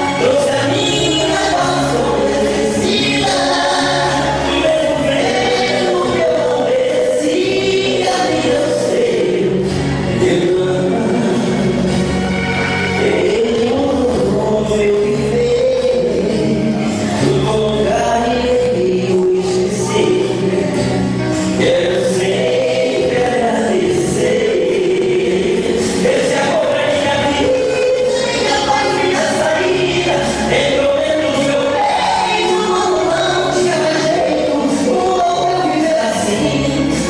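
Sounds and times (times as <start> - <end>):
instrumental backing: 0.0 - 37.0
man singing into microphone: 0.0 - 37.0.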